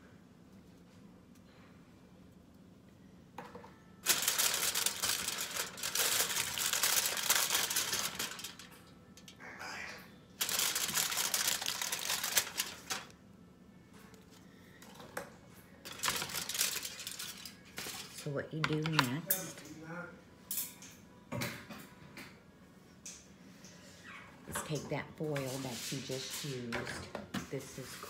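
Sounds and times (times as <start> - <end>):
aluminum foil crinkling: 4.0 - 9.4, 10.4 - 13.1, 15.8 - 19.4.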